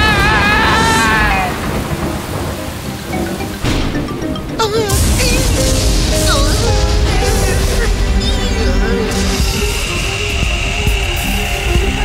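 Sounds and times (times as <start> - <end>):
cartoon character screaming: 0.0 - 1.6
steady low noise: 1.6 - 12.0.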